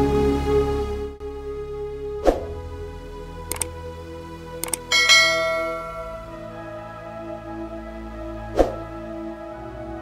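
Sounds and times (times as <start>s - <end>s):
soft background music: 0.0s - 10.0s
bell-like chime: 4.6s - 6.6s.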